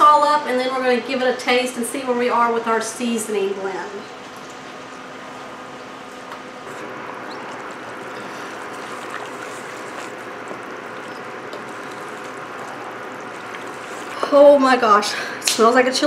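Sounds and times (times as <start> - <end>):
wooden spoon stirring thick mixture: 7.4 - 14.9.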